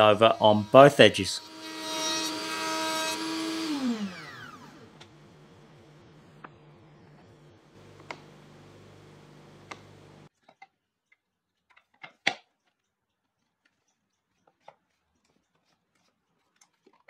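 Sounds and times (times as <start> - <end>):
steady low hum: 3.8 - 10.3
wooden pieces clicking and knocking: 10.4 - 15.7.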